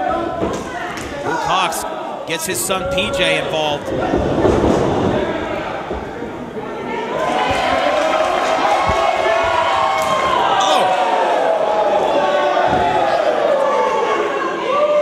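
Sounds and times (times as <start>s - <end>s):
crowd shouting: 1.2s - 4.5s, 6.7s - 15.0s.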